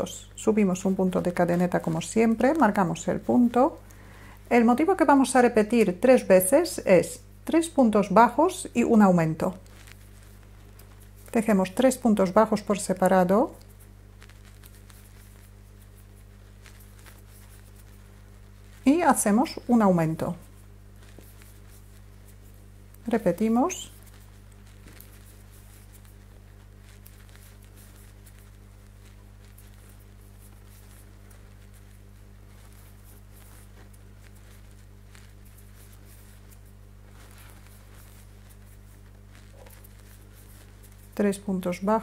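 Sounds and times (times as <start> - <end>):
low electrical hum: 0.0 - 42.0
crochet hook clicking and rustling: 21.0 - 42.0.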